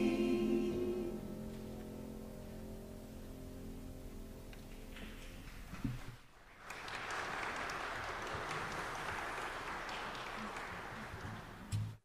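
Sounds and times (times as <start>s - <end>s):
congregation applauding: 5.4s - 12.0s.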